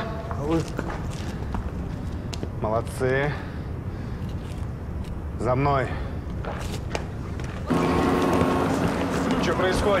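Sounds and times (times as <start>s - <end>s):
street traffic noise: 3.6s - 10.0s.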